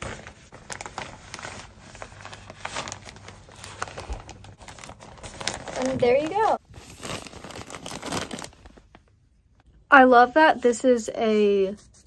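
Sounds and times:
plastic bag crinkling: 0.5 - 9.1.

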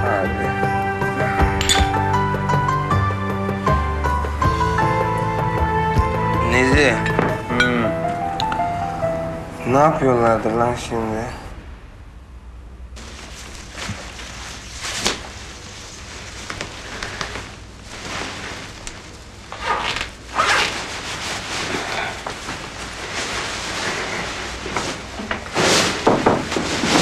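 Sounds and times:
gown fabric rustling: 13.0 - 27.0.

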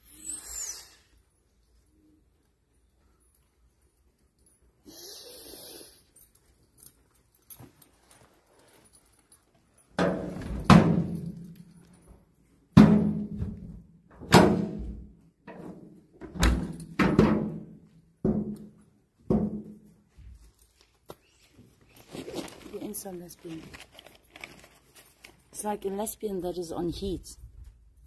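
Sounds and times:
clanging thuds on metal door: 10.0 - 11.4, 12.8 - 15.1, 16.2 - 18.6.

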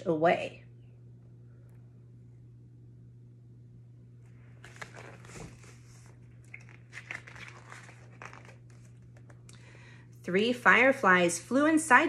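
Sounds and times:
low electrical hum: 0.0 - 12.0
paper rustling and crinkling: 4.5 - 9.4.

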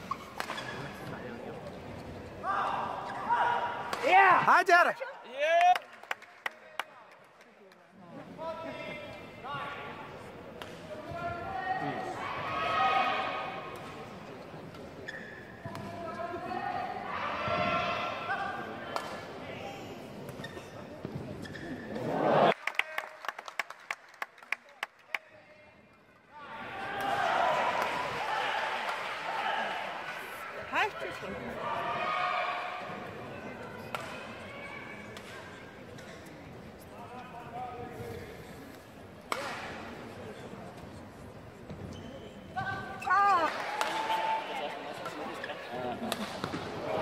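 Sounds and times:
crowd shouting and cheering: 16.5 - 18.5, 22.0 - 23.0, 26.4 - 35.0, 43.0 - 45.5.

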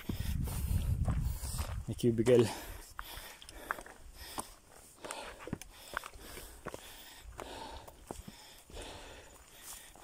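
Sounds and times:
footsteps on rocky dirt trail: 0.0 - 10.0.

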